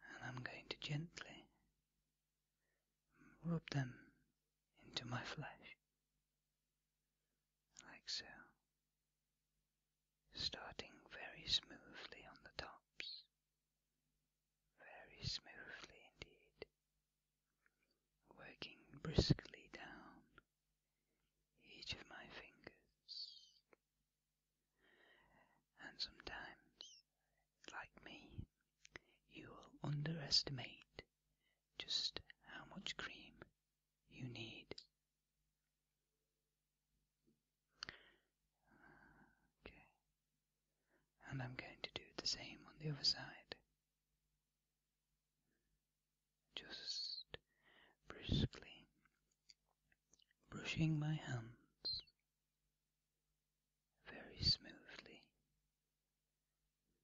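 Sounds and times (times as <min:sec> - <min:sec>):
man whispering: 0:00.0 - 0:01.6, 0:03.2 - 0:04.2, 0:04.8 - 0:05.8, 0:07.8 - 0:08.6, 0:10.3 - 0:13.3, 0:14.8 - 0:16.7, 0:18.3 - 0:20.4, 0:21.6 - 0:23.7, 0:25.0 - 0:27.0, 0:27.6 - 0:31.1, 0:31.8 - 0:34.9, 0:37.8 - 0:40.0, 0:41.2 - 0:43.6, 0:46.5 - 0:49.0, 0:50.5 - 0:52.2, 0:54.0 - 0:55.3.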